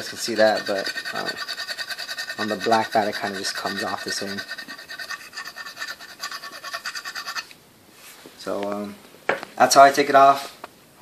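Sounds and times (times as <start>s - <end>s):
putty knife scraping wooden bat: 0.0s - 7.6s.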